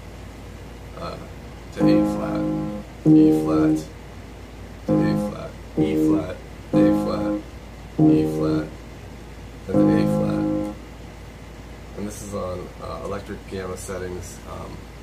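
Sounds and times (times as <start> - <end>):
electronic keyboard notes: 1.8 - 3.9, 4.8 - 8.8, 9.7 - 10.8.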